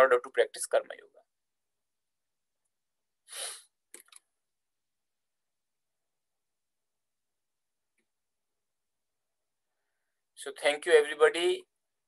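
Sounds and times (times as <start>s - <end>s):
person breath burst: 3.3s - 3.7s.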